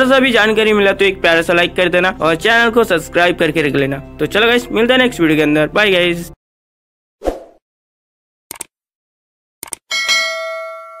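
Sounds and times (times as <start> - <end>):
quick double clicks: 8.5 - 8.7, 9.6 - 9.8
bell ding: 9.9 - 11.0.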